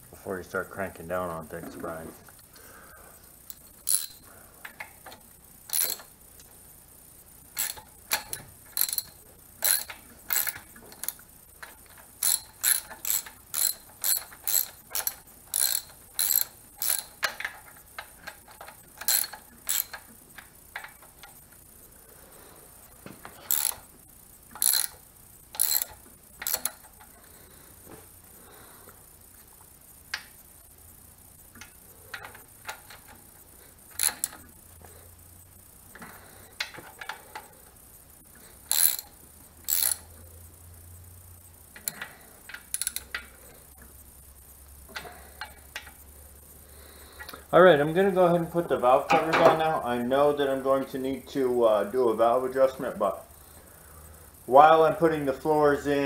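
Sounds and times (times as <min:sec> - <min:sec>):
ratchet wrench clicking: 0:03.4 - 0:06.2, 0:07.6 - 0:21.4, 0:23.4 - 0:23.9, 0:24.5 - 0:27.0, 0:33.9 - 0:34.5, 0:38.7 - 0:40.1, 0:41.8 - 0:43.3.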